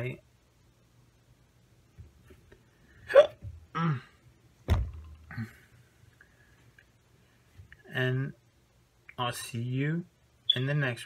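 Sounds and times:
man hiccuping or coughing: 3.1 - 4.2.

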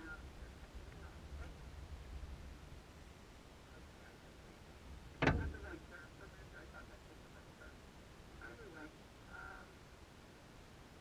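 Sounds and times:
low rumble: 4.6 - 6.9.

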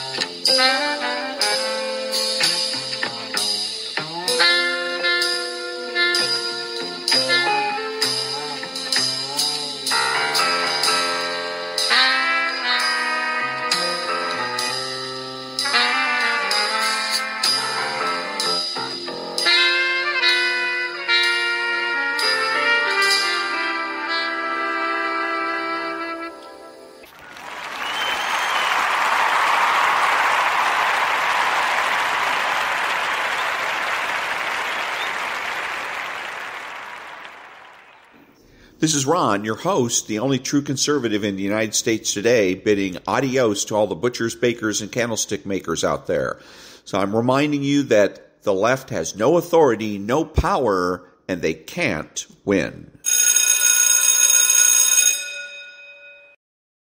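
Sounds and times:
crowd applause: 27.1 - 38.3
bell ringing: 53.0 - 56.4.

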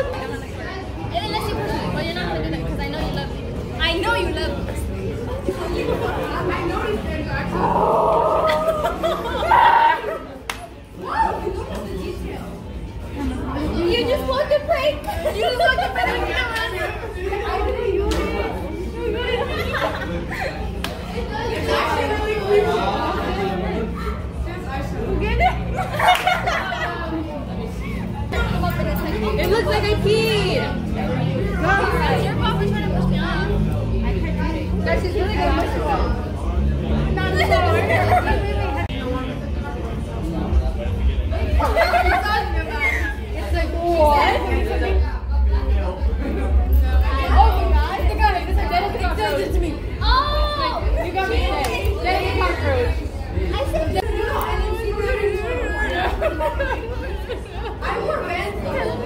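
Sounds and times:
girls chatting: 0.0 - 39.0, 40.2 - 59.0.

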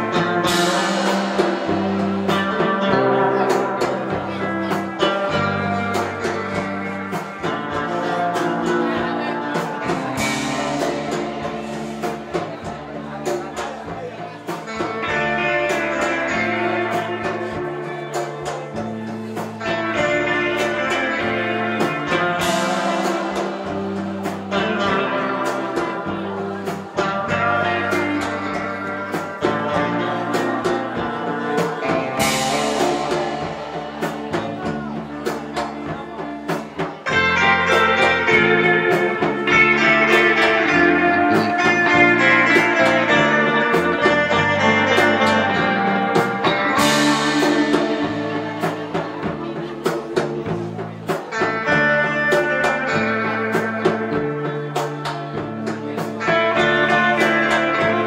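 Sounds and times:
drum kit beat: 0.0 - 58.0
electric bass: 0.0 - 58.0
electric lead guitar: 0.0 - 58.0.

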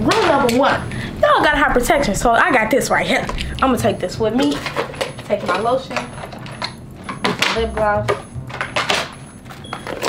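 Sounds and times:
cosmetic items clinking: 4.4 - 10.0.

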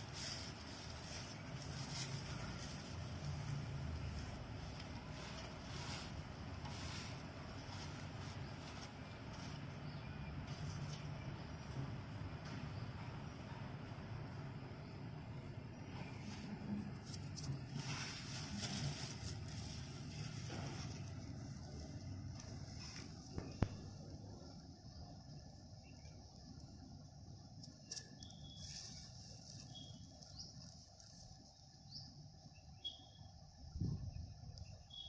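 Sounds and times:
bird chirps: 27.7 - 31.2, 31.8 - 33.6, 34.2 - 35.0.

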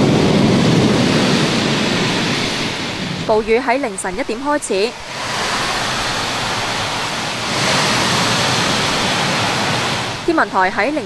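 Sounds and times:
torrential rain pouring: 0.0 - 11.0.

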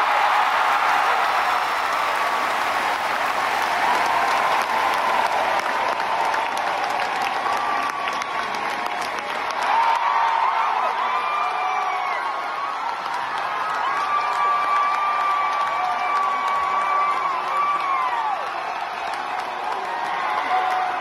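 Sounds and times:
audience clapping: 0.0 - 21.0.

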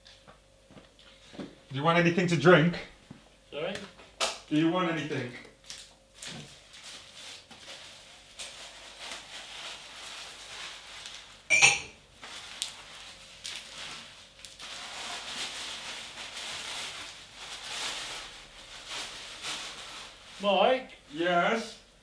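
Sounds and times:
soft steady hiss: 7.6 - 22.0
cups and utensils clicking: 11.5 - 11.9.

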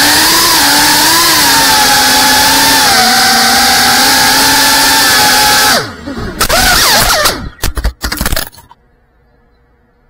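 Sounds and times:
faint steady hum: 7.4 - 10.0.

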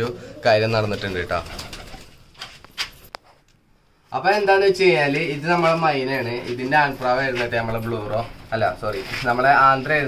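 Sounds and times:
pigeons cooing softly: 0.0 - 1.4.

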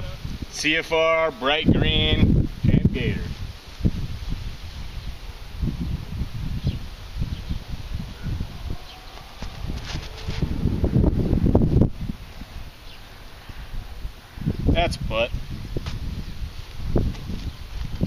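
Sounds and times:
wind buffeting microphone: 0.0 - 0.8, 1.5 - 18.0
faint rustling: 8.8 - 10.7.

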